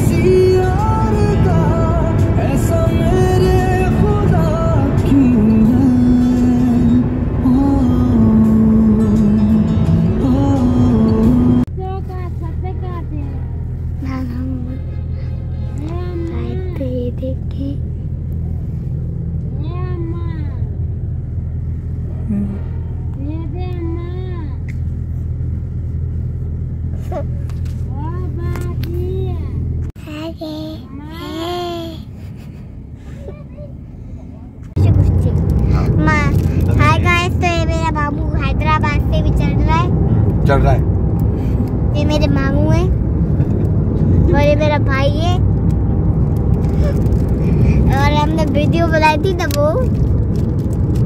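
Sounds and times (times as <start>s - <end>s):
car cabin rumble: 0.0s - 31.1s, 33.0s - 51.0s.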